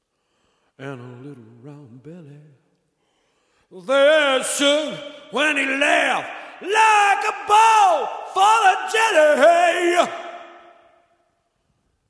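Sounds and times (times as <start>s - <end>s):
man speaking with reverb: 0.8s - 2.7s, 3.7s - 11.1s.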